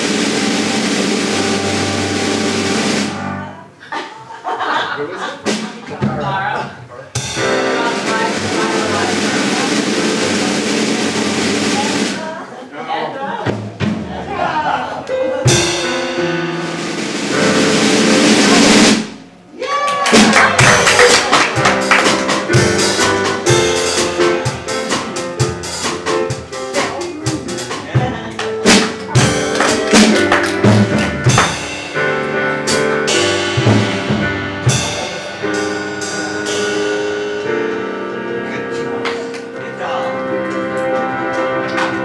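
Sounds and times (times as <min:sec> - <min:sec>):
drum kit beat: 0:00.0 - 0:03.8, 0:04.6 - 0:12.5, 0:13.4 - 0:42.0
keyboard chords: 0:00.0 - 0:03.8, 0:07.2 - 0:12.4, 0:14.5 - 0:19.5, 0:20.4 - 0:42.0.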